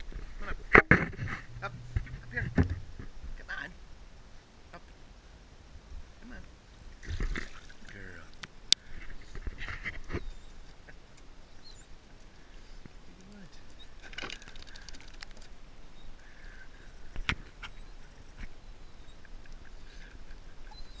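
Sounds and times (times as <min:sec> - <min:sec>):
water splashing off a dog: 0:07.0 - 0:08.0.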